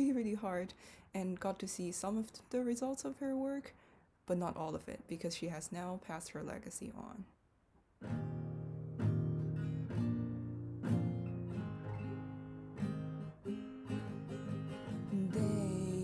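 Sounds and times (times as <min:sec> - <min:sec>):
acoustic guitar strumming: 0:08.0 - 0:16.0.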